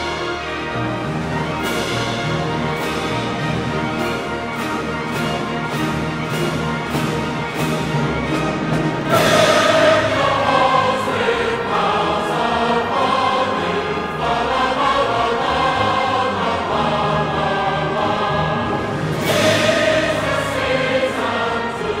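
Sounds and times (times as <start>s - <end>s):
choir singing held chords: 8.8s - 22.0s.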